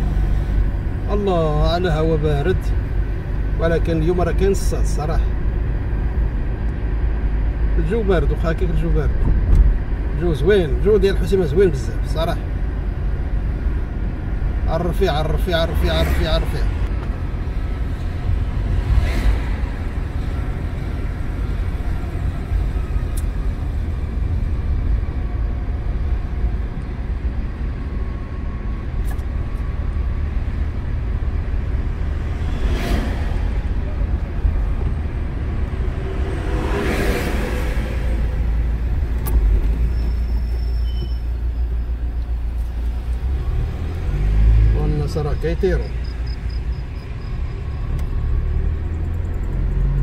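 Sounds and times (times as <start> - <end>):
road and engine rumble: 0.0 - 50.0
cars rushing past: 11.7 - 28.0, 28.6 - 50.0.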